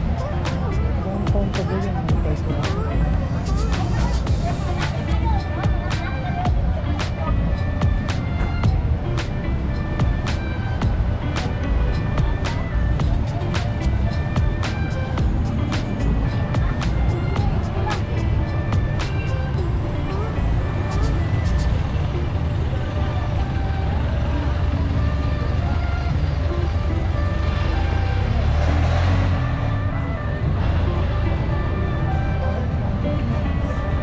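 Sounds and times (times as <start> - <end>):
music: 0.0 - 34.0
road traffic: 0.0 - 34.0
voices: 0.0 - 34.0
vehicle passing close: 7.0 - 34.0.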